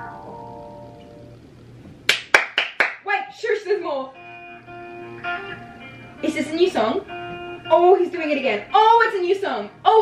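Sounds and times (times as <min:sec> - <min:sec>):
hand claps: 0:02.1 - 0:03.1
song: 0:04.2 - 0:08.9.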